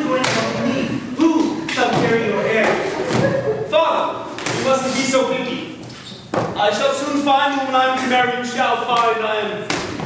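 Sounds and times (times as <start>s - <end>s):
person speaking in echoing hall: 0.0s - 10.0s.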